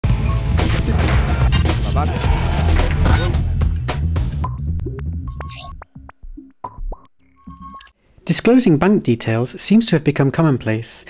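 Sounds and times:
synth blips swooping up: 0:05.2 - 0:07.9.

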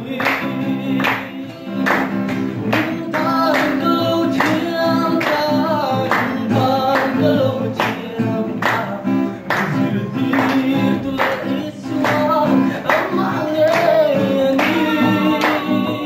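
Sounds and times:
group singing: 0:00.0 - 0:16.0
hand claps: 0:00.0 - 0:16.0
strummed acoustic guitar: 0:00.0 - 0:16.0.

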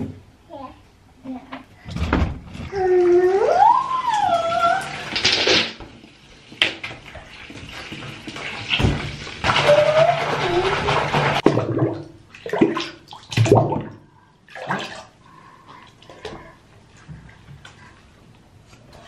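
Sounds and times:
water splashing in bathtub: 0:02.0 - 0:19.0.

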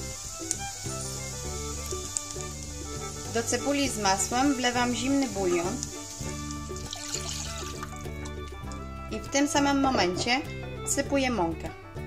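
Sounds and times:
background music: 0:00.0 - 0:12.0
liquid pouring into pot: 0:05.4 - 0:08.9.

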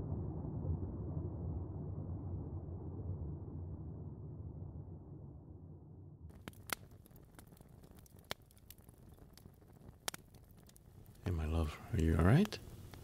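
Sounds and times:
faint low rumble: 0:00.0 - 0:13.0
faint hiss: 0:10.8 - 0:13.0.

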